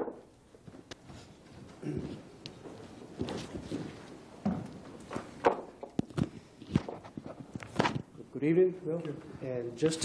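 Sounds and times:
footsteps on hard floor: 0.6 - 5.5.

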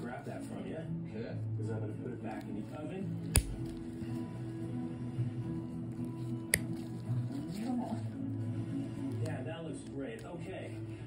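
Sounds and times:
background music: 0.0 - 11.0
toenail nippers snapping: 3.2 - 3.8, 6.4 - 6.9.

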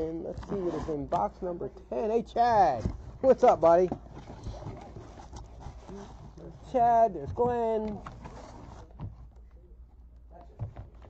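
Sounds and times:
cardboard box rustling: 0.2 - 9.4.

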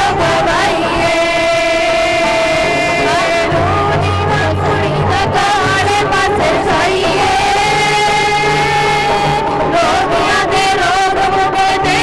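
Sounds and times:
instrumental worship music: 0.0 - 12.0
person singing long note: 0.0 - 12.0.

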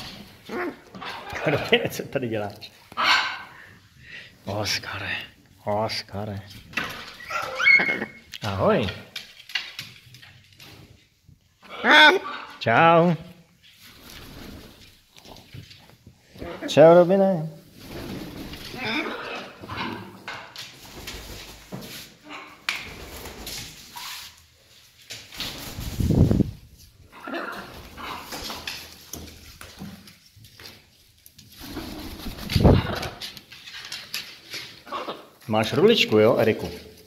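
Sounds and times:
parrots calling: 3.0 - 3.7, 7.0 - 8.3, 11.6 - 12.6, 18.7 - 20.4.

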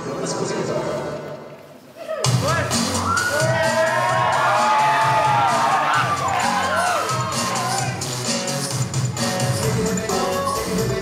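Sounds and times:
crowd cheering and shouting: 2.0 - 8.4
loud dance music: 2.2 - 11.0.

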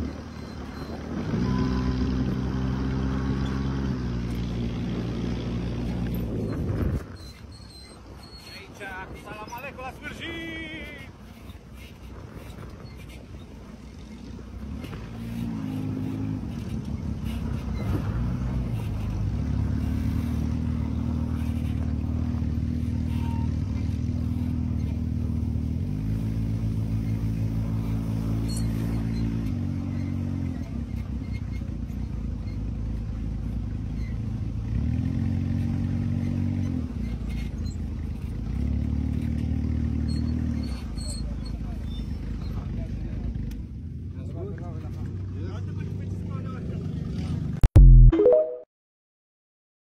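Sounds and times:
dune buggy engine running: 0.0 - 47.6.

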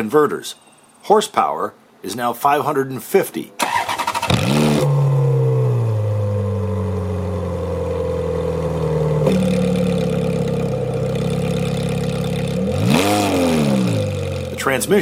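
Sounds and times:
engine throttle blip: 3.6 - 14.6
car engine idling: 3.7 - 15.0.

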